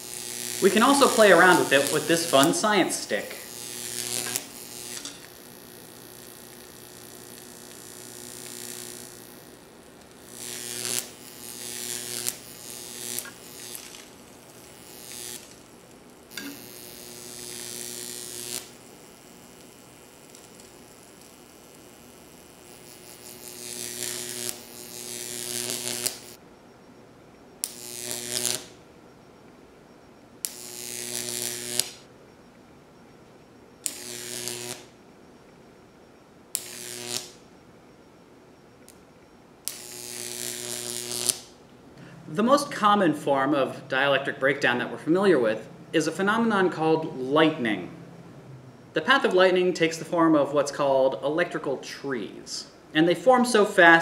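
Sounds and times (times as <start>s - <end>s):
electric arc buzzing: 0.0s - 26.4s, 27.6s - 28.9s, 30.4s - 32.1s, 33.8s - 35.1s, 36.4s - 37.6s, 38.8s - 54.0s
quiet transformer hum: 0.0s - 54.0s.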